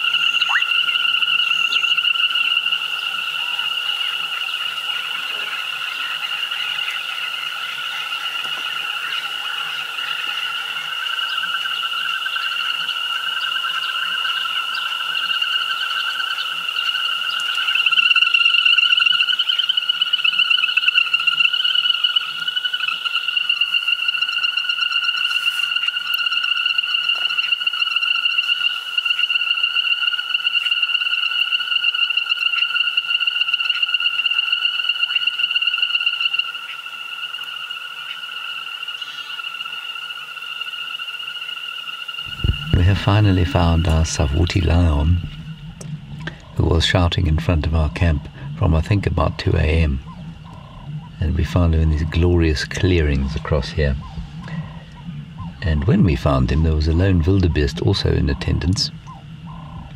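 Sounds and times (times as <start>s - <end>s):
frogs calling in chorus: 0.0s - 59.9s.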